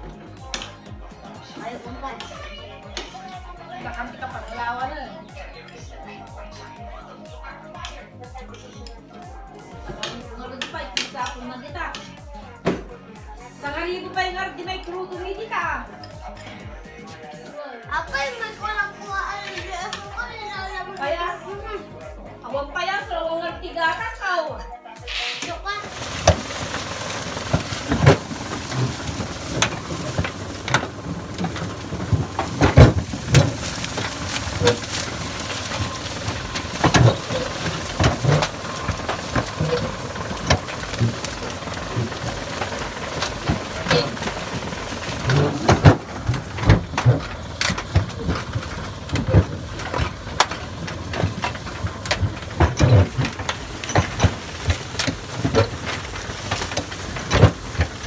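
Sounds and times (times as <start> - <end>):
tractor engine running: 25.7 - 58.0
knocks and clatters: 25.8 - 58.0.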